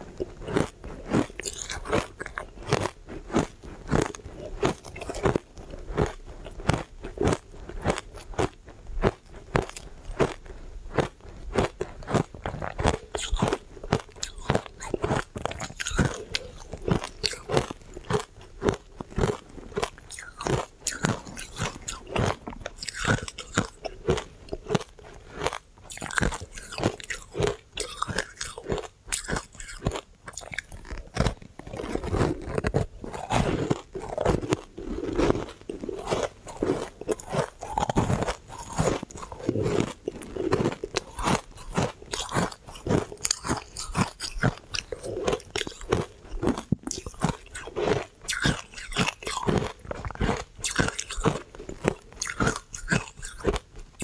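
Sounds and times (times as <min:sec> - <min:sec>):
crunchy ice chewing: 0:00.0 - 0:54.0.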